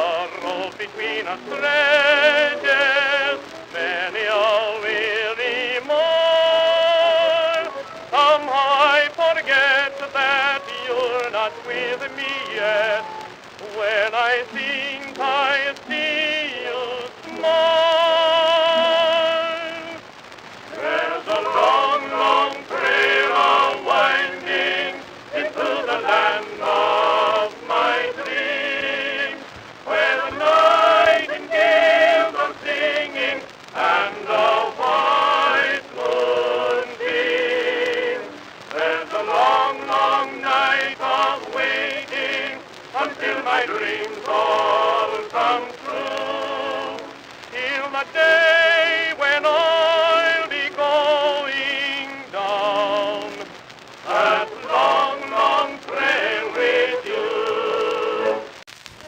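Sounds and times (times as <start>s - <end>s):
singer with vibrato: 0.0s - 58.6s
record surface hiss: 0.0s - 59.0s.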